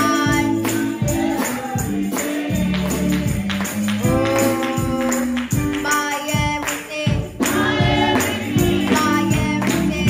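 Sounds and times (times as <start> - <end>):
bass line: 0.0 - 5.7
tambourine: 0.0 - 10.0.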